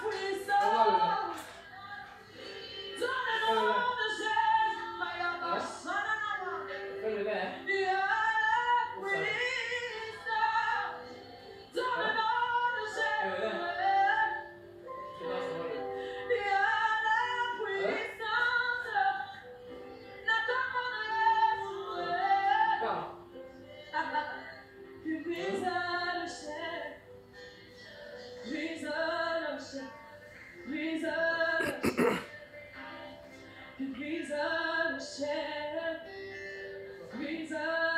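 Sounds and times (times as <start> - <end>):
person singing unaccompanied: 0.0 - 14.6, 15.2 - 37.9
music: 0.0 - 37.9.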